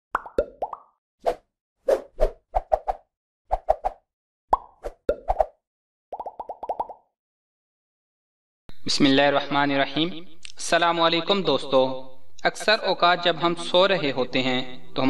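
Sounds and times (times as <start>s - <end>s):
cartoon pop and bloop effects: 0.1s - 1.0s, 4.5s - 7.1s.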